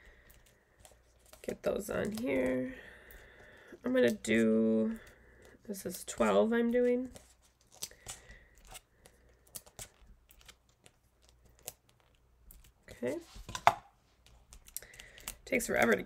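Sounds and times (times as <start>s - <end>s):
adhesive backing peeling rustles: 0.2s - 2.5s, 5.4s - 13.6s.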